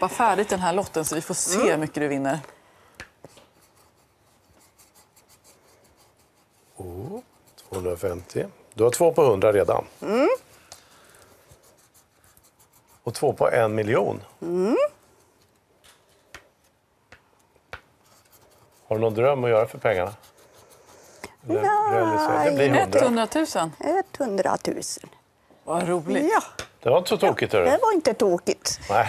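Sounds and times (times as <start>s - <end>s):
scratching a lottery ticket: 3.4s - 8.3s, 10.3s - 14.0s, 18.0s - 24.4s
scraper on scratch card: 18.0s - 22.8s.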